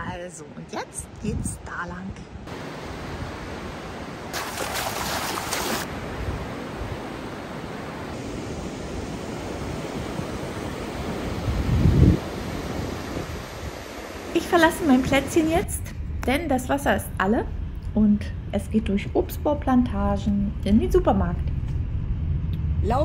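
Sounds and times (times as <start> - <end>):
wind buffeting microphone: 0.9 - 4.0, 5.7 - 17.3
surf breaking on a beach: 2.5 - 15.5.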